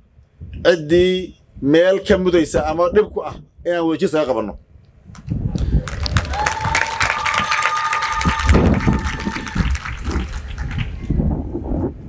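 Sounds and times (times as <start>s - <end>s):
audience applauding: 5.6s - 11.1s.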